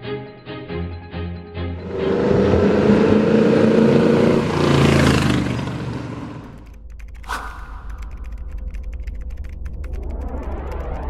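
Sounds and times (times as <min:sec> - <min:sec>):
truck engine revving: 0:01.7 - 0:06.7.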